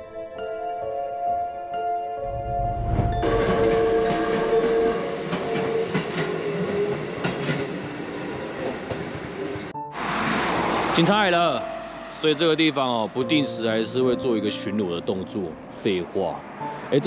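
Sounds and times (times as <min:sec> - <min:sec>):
train horn: 0:02.3 - 0:07.6
train running noise with knocks: 0:02.8 - 0:09.8.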